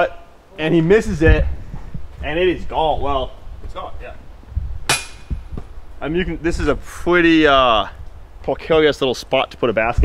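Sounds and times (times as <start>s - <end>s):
low thumps: 1.2s - 6.9s
disc striking metal basket: 4.9s - 5.4s.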